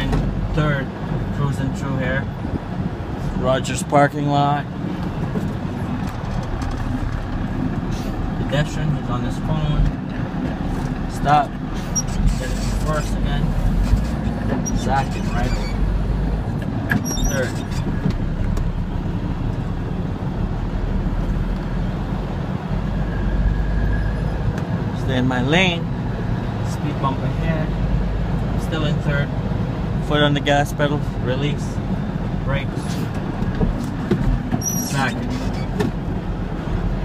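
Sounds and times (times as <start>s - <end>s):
truck engine low rumble: 0.0s - 37.0s.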